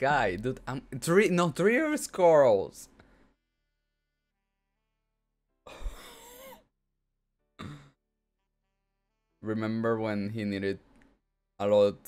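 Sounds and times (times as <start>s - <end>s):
faint background music: 0.0s - 3.0s, 7.4s - 12.0s
man sighing: 5.7s - 6.6s.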